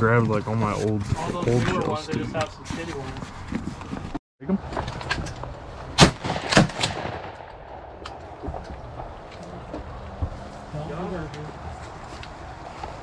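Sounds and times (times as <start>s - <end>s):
shotgun blasts: 6.0s - 8.1s.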